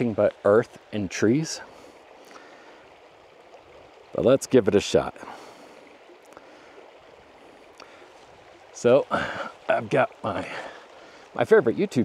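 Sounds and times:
stream flowing: 0.0 - 12.0.

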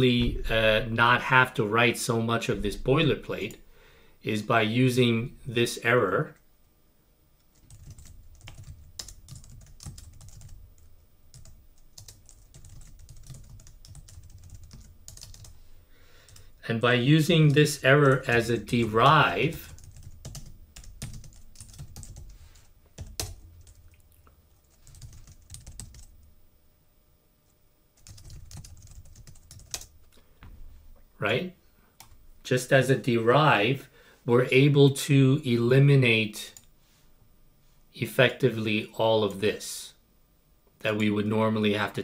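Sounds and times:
typing on computer keyboard: 7.6 - 15.6, 19.6 - 22.4, 23.0 - 24.0, 24.7 - 26.2, 28.0 - 30.0.

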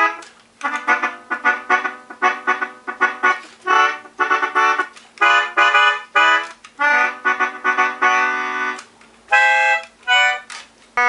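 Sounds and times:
melodica playing short notes: 0.0 - 11.0.

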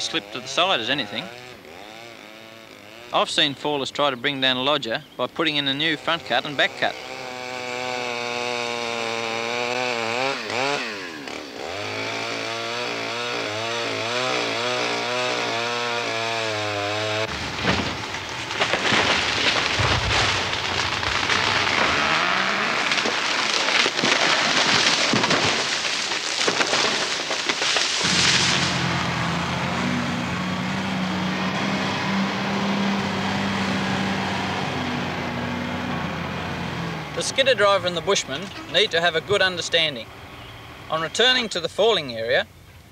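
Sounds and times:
chainsaw cutting into tree trunk: 0.0 - 3.2, 5.9 - 39.5
diesel engine running: 5.8 - 25.8, 28.0 - 41.2
timber crashing and branches breaking: 7.0 - 29.9.

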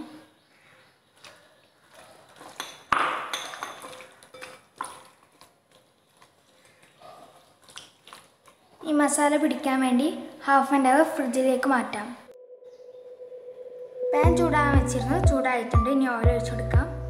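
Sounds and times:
crockery knocking and clinking: 2.5 - 4.6.

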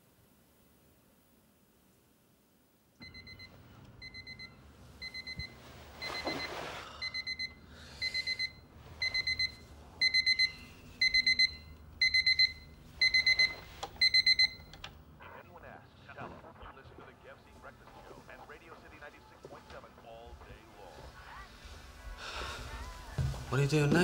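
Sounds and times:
digital alarm clock beeping: 3.0 - 14.7.

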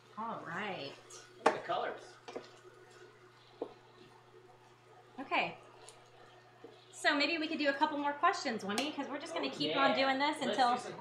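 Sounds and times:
stirring food in frying pan: 0.0 - 8.4.

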